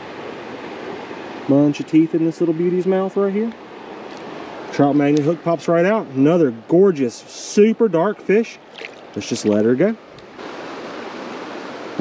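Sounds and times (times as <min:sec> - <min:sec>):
creek water flowing: 0:00.0 - 0:12.0.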